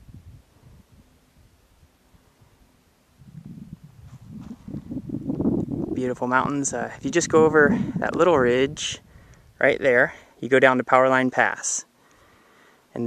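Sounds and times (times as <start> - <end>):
wind buffeting microphone: 0.0 - 1.1, 3.2 - 9.7.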